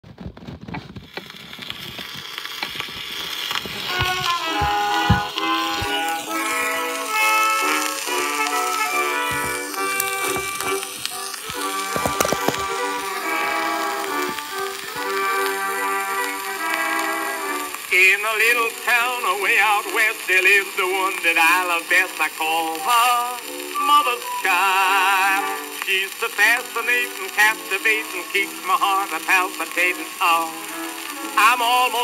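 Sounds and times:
record surface hiss and crackle: 0.0s - 32.0s
old phonograph melody: 2.4s - 32.0s.

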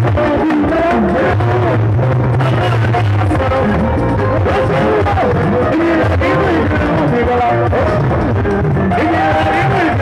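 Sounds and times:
bass line: 0.0s - 10.0s
electronic keyboard: 0.0s - 10.0s.

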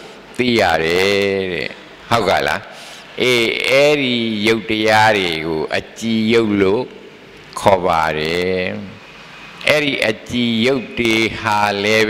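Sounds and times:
man talking through microphone: 0.4s - 9.0s, 9.6s - 12.0s.

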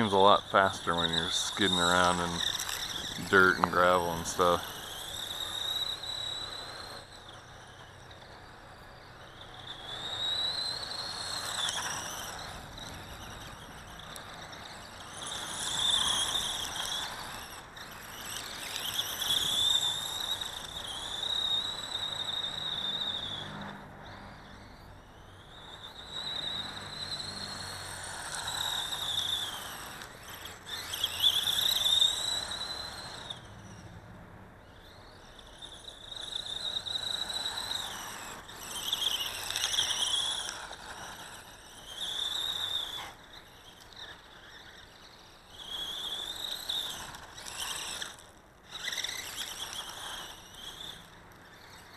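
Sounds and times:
tyres scrabbling on gravel: 0.0s - 8.7s, 9.6s - 23.0s, 26.1s - 33.3s, 34.8s - 51.9s
rc car motor whining: 0.0s - 51.9s.

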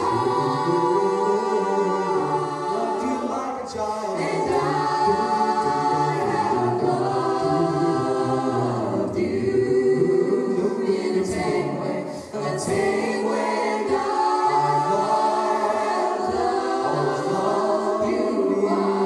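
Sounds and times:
a cappella vocal ensemble singing: 0.0s - 19.0s.

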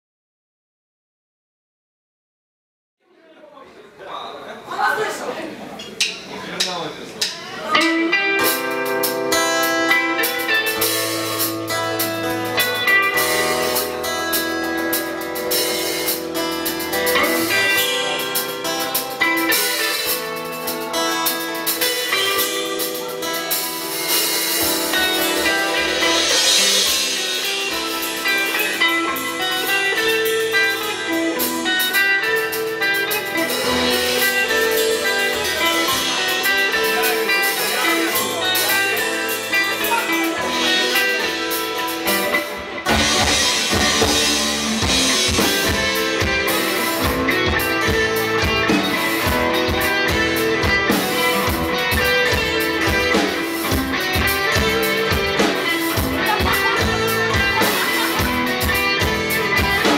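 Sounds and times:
drum kit: 5.8s - 59.9s
live rock band playing: 5.9s - 59.9s.

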